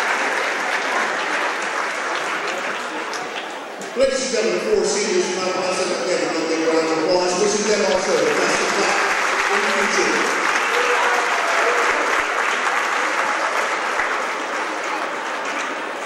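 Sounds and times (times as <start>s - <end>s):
crowd applauding: 0.0s - 4.3s, 6.0s - 16.0s.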